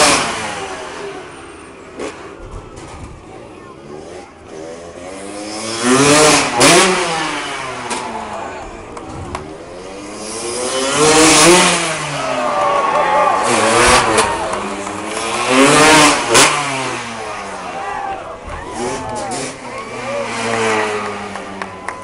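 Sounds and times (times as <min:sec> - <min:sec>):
motocross bike engines revving: 0:00.0 - 0:22.0.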